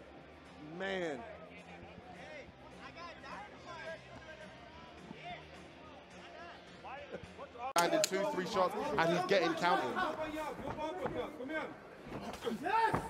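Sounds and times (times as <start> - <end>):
faint background music: 0.0 - 13.0
commentator's voice: 7.8 - 10.4.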